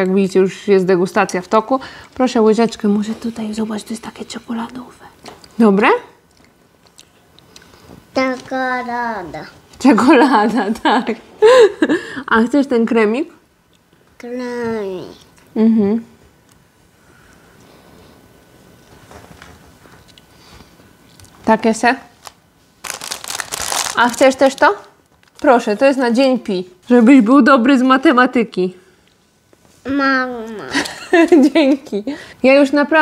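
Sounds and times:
plastic packaging crackling: 22.2 - 25.9.

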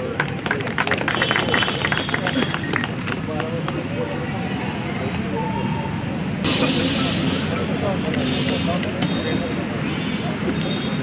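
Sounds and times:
people chattering: 0.0 - 11.0.

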